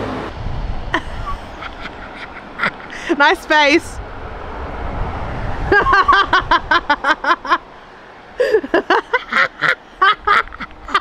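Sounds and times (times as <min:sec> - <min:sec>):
road vehicle passing: 0:00.0 - 0:11.0
woman laughing: 0:00.9 - 0:03.3, 0:05.6 - 0:07.6, 0:08.4 - 0:11.0.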